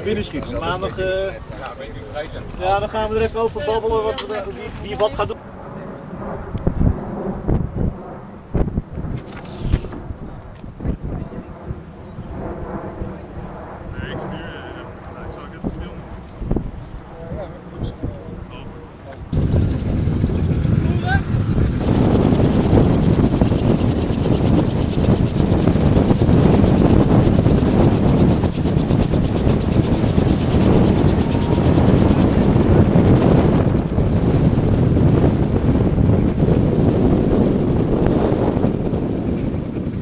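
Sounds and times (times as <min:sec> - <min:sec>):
strong wind on microphone: 0:00.0 - 0:40.0.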